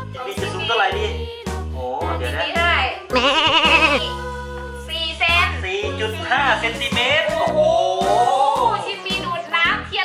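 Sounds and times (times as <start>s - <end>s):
sheep-like bleat: 3.1s - 4.1s.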